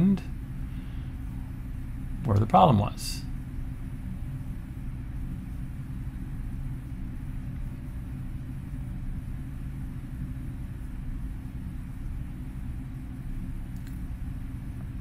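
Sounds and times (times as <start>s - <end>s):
low room hum and rumble: 0.0s - 15.0s.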